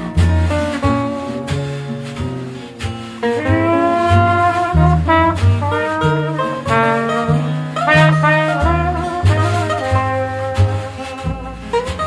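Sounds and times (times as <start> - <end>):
walking upright bass: 0.0 - 12.0
brass lead melody: 3.2 - 12.0.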